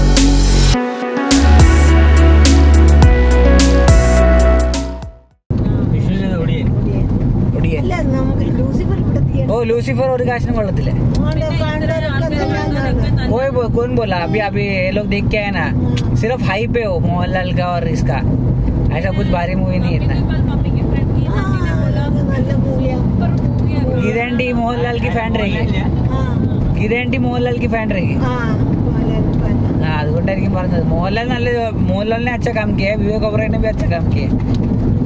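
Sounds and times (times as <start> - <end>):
background music: 0.0 - 5.4
car road and engine rumble: 5.5 - 35.0
people talking: 5.6 - 18.3, 18.9 - 34.3.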